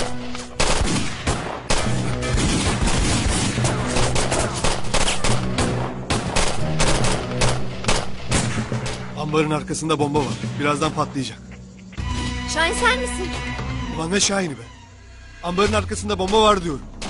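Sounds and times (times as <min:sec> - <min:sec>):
rapid gunfire: 0:00.6 - 0:09.0.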